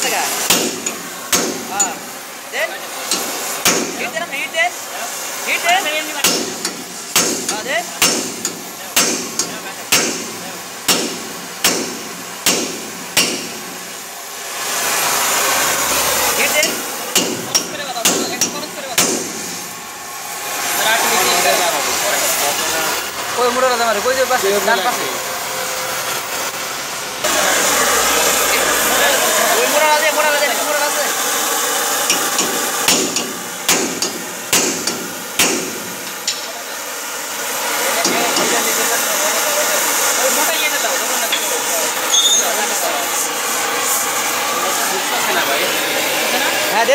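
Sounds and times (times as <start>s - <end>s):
torch hissing: 0.0s - 46.9s
hammer striking steel: 0.4s - 2.1s, 3.0s - 4.2s, 6.2s - 13.9s, 16.5s - 19.7s, 32.0s - 36.6s.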